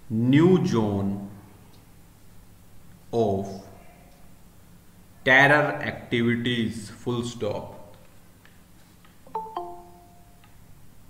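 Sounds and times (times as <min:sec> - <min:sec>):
descending notification chime: 0:09.3 - 0:10.3.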